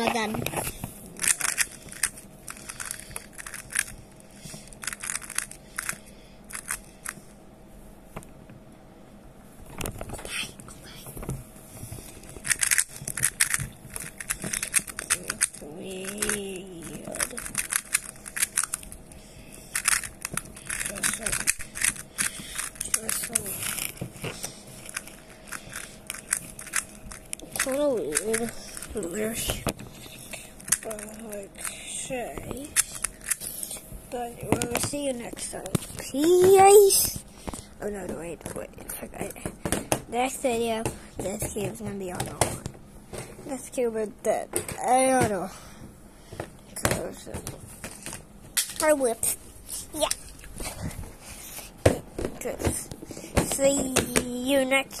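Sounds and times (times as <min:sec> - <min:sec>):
puzzle cube plastic clicks: 0:00.1 - 0:07.2, 0:12.1 - 0:31.8, 0:32.4 - 0:33.8.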